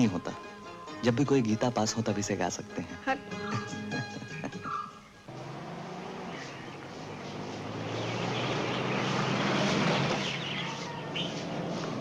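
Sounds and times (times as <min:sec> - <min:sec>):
jeep engine driving past: 0:04.7 - 0:12.0.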